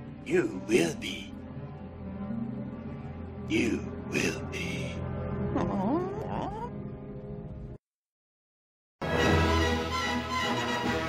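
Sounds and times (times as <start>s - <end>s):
soft background music: 0.0s - 7.6s.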